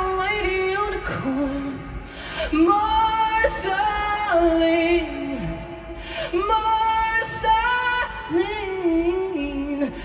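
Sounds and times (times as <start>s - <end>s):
woman singing through pa: 0.0s - 10.0s.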